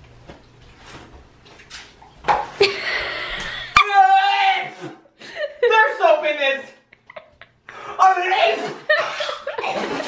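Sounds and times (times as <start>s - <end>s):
person slurping noodles: 8.5s - 10.0s.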